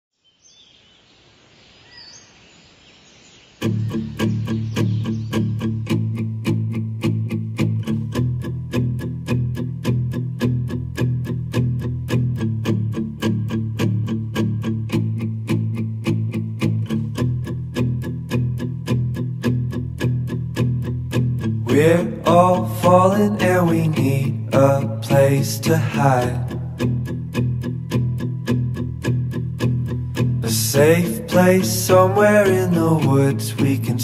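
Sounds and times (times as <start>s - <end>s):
faint background noise: 0.2s - 5.4s
guitar strummed quickly: 3.6s - 34.0s.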